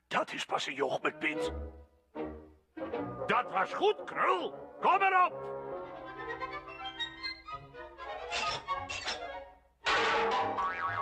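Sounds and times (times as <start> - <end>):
comic boing sound effect: 9.9 - 11.0.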